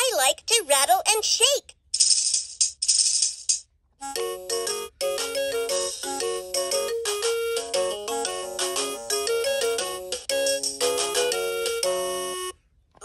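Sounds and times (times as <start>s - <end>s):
toy playing electronic tune: 4.0s - 12.6s.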